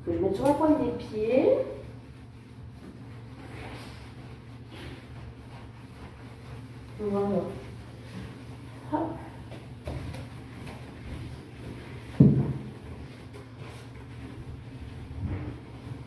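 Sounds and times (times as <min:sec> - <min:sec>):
sponge scrubbing tiles: 0:00.2 - 0:16.0.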